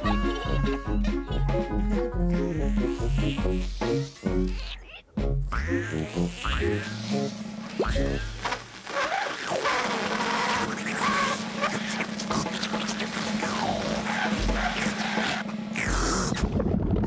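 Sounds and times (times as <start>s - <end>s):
music: 0.0s - 8.4s, 12.3s - 15.7s
toy vacuum cleaner humming: 5.8s - 11.8s.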